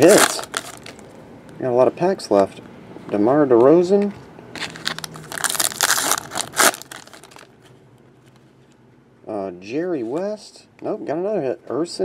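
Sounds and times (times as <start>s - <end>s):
plastic wrapper crinkling: 0.0s - 1.1s, 4.6s - 7.7s.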